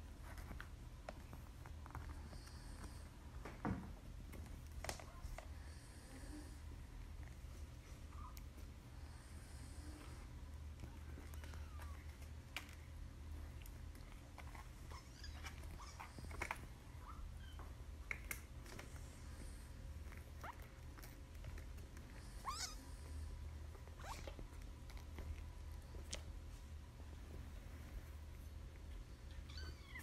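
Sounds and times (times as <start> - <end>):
kitten mewing: 22.4 - 22.8.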